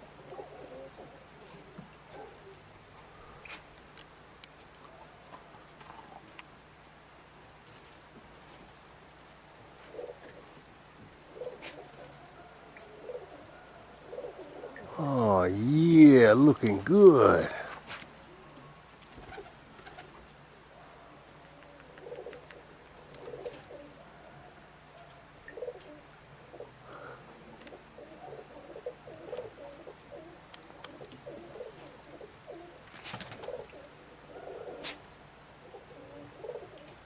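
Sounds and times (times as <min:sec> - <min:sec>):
pigeons cooing: 0:00.0 - 0:03.4, 0:09.8 - 0:10.6, 0:11.2 - 0:14.9, 0:18.2 - 0:20.2, 0:20.8 - 0:24.6, 0:25.3 - 0:37.0.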